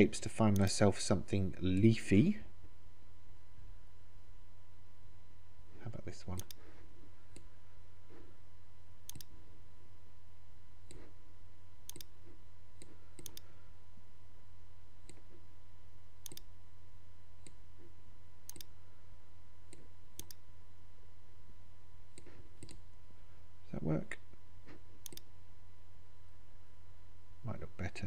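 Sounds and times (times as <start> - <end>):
low electrical hum: 0.0 - 28.0
mouse button clicks: 9.1 - 9.3, 11.9 - 12.1, 16.2 - 16.5.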